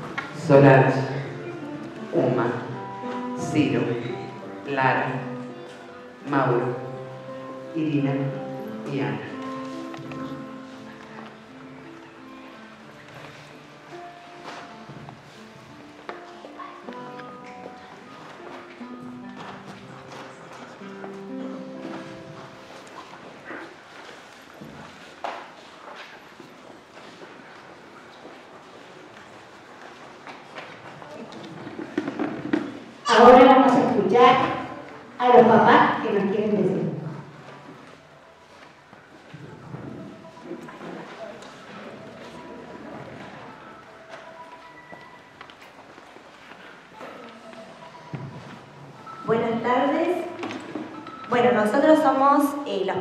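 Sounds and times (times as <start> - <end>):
faint murmur of voices: 0.0 - 53.0
footsteps on tiled floor: 8.5 - 33.0, 37.1 - 49.2.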